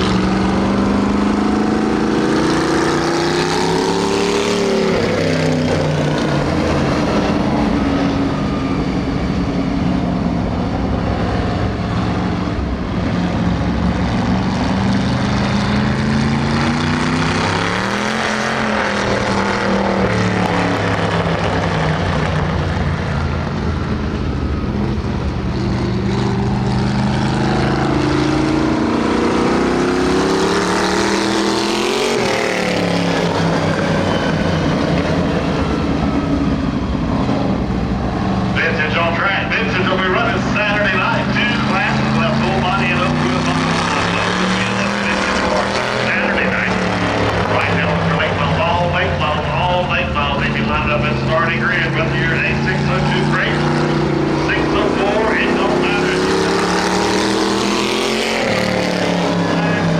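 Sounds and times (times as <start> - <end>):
race car engine passing: 0.0 - 59.9.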